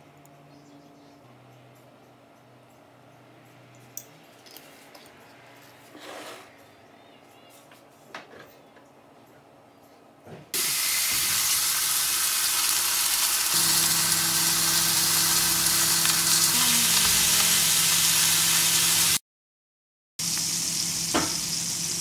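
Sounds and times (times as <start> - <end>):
steaks sizzling in a frying pan: 10.6 - 19.2, 20.2 - 22.0.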